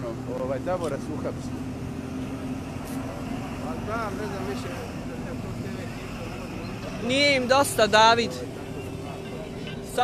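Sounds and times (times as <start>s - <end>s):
low traffic rumble: 0.0s - 10.0s.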